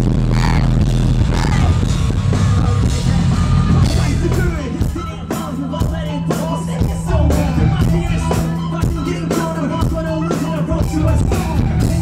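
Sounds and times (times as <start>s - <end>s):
distorted guitars: 0.0s - 12.0s
heavy drums: 0.0s - 12.0s
live rock band playing: 0.0s - 12.0s
vocal phrases: 0.2s - 1.9s.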